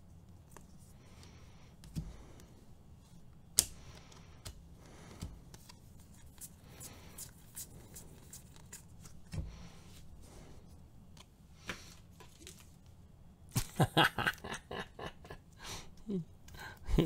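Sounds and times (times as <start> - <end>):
cards flipping and ticking: 3.3 - 9.7, 11.1 - 13.0.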